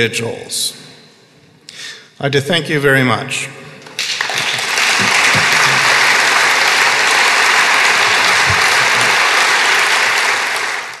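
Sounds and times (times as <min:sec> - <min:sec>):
audience applauding: 0:03.8 - 0:11.0.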